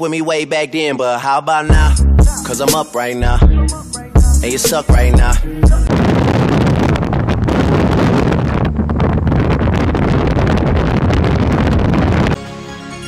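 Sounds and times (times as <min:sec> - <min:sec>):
harsh distorted noise: 0:04.2 - 0:12.4.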